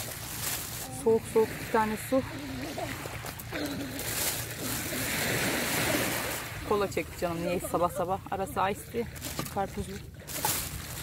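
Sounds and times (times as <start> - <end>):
surf washing over pebbles: 0.0 - 6.9
plastic bottles crinkling: 9.1 - 11.0.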